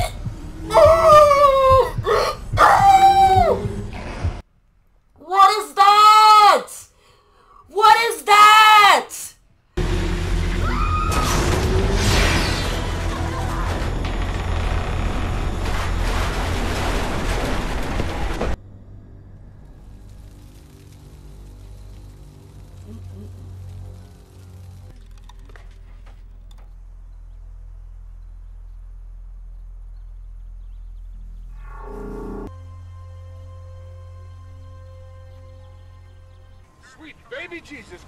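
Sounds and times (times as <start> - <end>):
woman screaming: 0.0 - 3.8, 5.2 - 6.9, 7.7 - 9.3, 10.6 - 11.3
low rumble: 0.0 - 4.5, 9.8 - 37.3.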